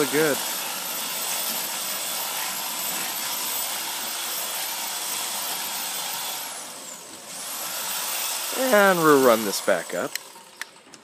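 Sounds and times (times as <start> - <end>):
garage door opener whirring: 0.0 - 11.0.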